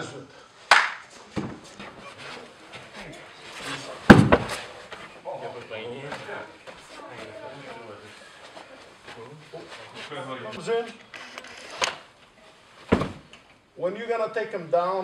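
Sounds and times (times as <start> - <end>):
light thumps and scuffs: 1.1 - 5.1, 12.8 - 13.4
murmur of voices: 1.6 - 12.7
body thudding onto floor mat: 4.1 - 4.6, 12.8 - 13.3.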